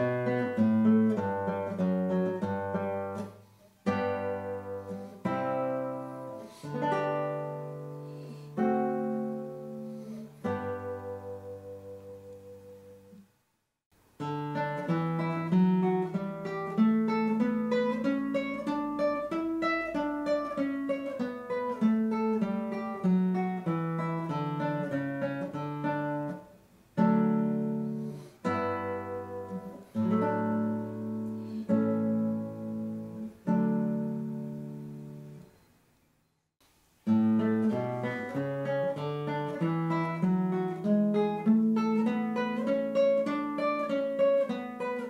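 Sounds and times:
classical guitar fingerstyle: 0.0s - 13.3s, 14.1s - 35.7s, 37.0s - 45.0s.

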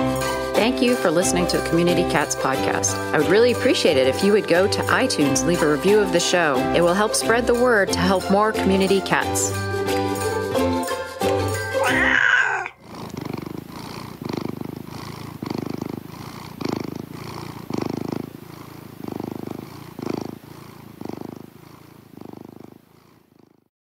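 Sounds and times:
cat purring: 0.5s - 9.6s, 11.8s - 23.7s.

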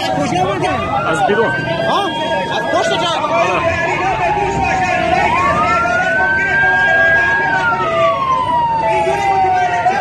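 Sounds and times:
emergency vehicle siren wailing: 0.0s - 10.0s
people's voices: 0.0s - 10.0s.

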